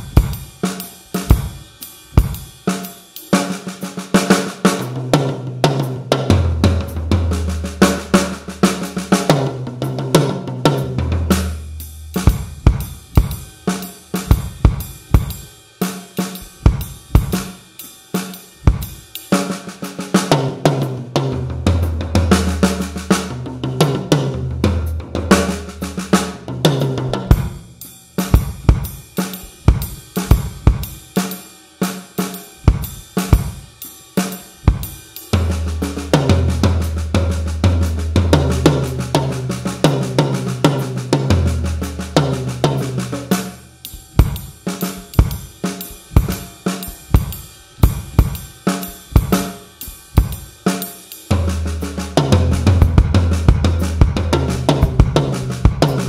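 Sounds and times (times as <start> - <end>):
drum kit playing swing: 0.0 - 56.0.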